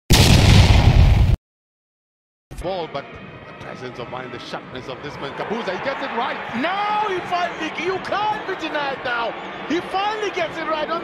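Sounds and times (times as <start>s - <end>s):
explosion sound effect: 0.1s - 1.4s.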